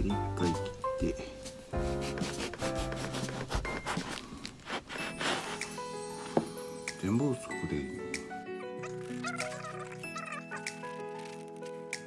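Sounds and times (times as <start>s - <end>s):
knife sawing through bread: 1.8s - 6.0s.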